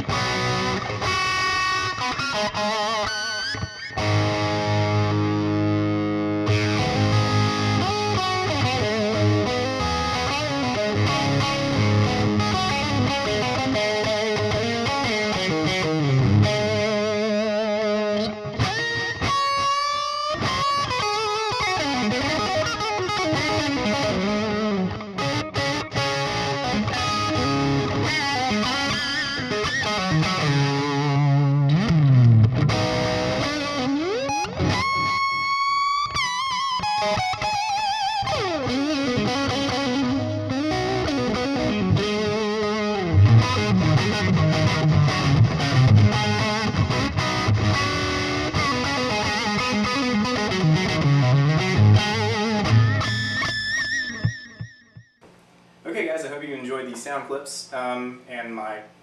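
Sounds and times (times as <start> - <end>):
distorted electric guitar lead: 0.0 - 55.8
guitar squeals rising in pitch: 15.6 - 55.2.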